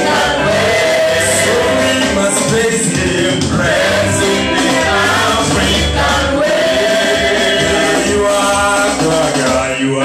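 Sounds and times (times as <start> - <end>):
group singing a worship song: 0.0 - 10.0.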